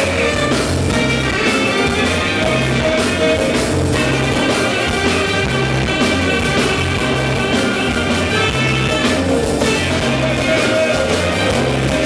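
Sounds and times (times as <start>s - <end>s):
live afrobeat band: 0.0s - 12.0s
tenor saxophone lead: 0.0s - 12.0s.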